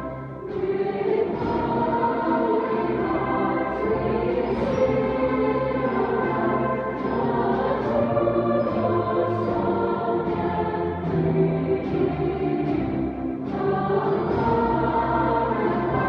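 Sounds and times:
choir singing held chords: 0.0s - 16.0s.

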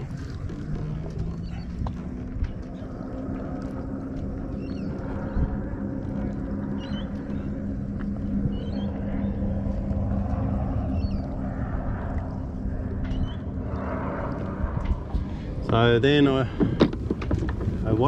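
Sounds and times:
boat engine humming: 0.0s - 18.0s
rumbling water and air: 0.0s - 18.0s.

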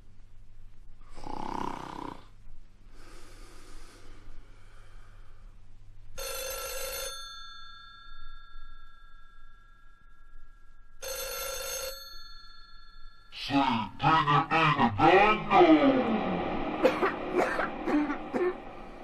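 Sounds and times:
telephone bell ringing: 6.2s - 10.0s, 11.0s - 13.3s
loud voice sliding in pitch: 13.4s - 19.0s.

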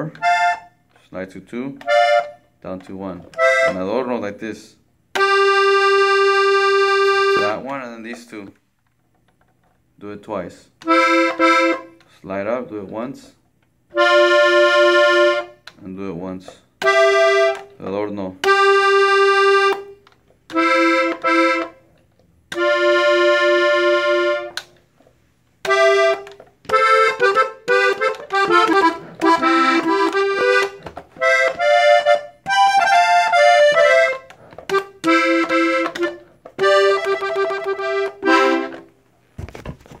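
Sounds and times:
button accordion playing: 0.0s - 1.0s, 1.7s - 4.2s, 5.1s - 8.3s, 10.8s - 12.1s, 13.9s - 15.8s, 16.8s - 17.8s, 18.4s - 24.7s, 25.6s - 39.0s.

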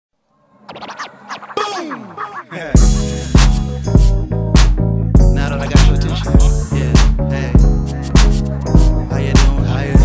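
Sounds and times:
turntable scratching: 0.6s - 4.2s, 7.9s - 9.0s
hip-hop music: 0.7s - 10.0s.

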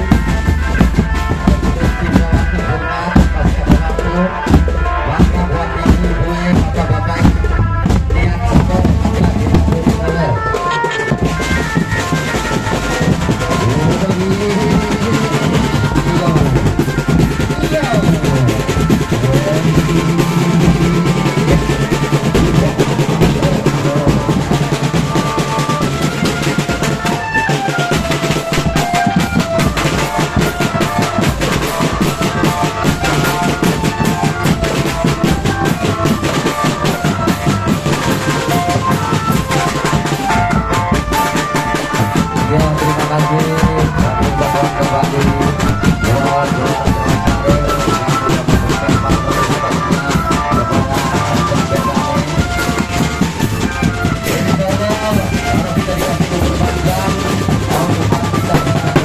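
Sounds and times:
marching bass and snare drums: 0.0s - 59.0s
melody over drumming: 0.0s - 59.0s.

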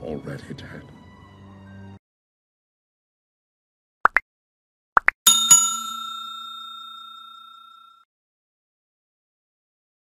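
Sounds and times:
bell-like notification ding: 5.3s - 8.0s.

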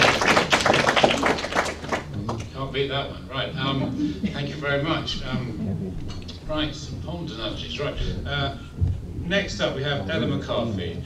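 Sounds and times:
audience applauding: 0.0s - 2.5s.

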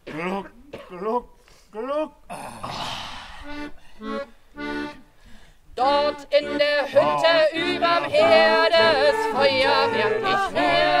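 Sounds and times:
accordion chords: 3.4s - 11.0s.

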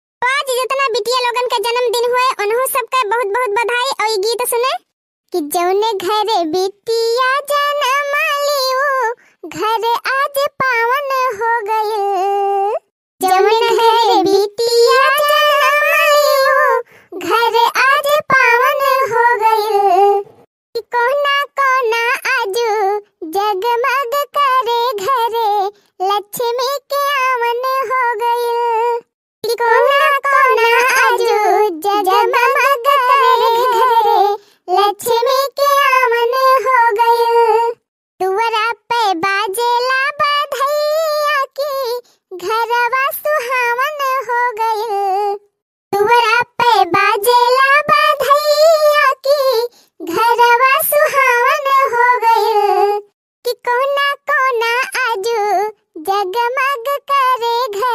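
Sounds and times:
woman singing unaccompanied: 5.4s - 45.4s, 46.0s - 57.9s.

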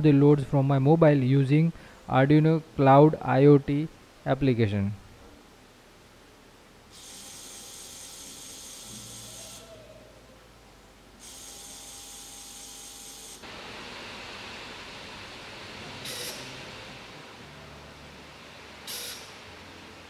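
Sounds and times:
small motor running with hiss: 6.9s - 9.8s, 11.2s - 14.8s, 15.9s - 17.0s, 18.8s - 19.6s
broad low hiss: 13.4s - 20.0s.

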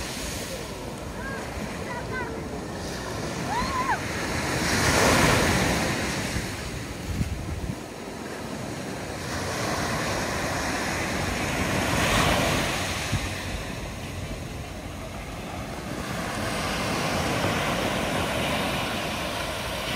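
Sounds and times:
sea waves breaking on shore: 0.0s - 19.9s.

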